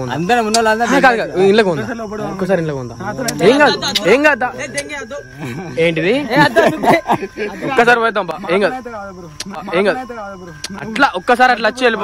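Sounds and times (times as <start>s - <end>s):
crickets chirping: 0.0s - 12.0s
men talking: 0.0s - 12.0s.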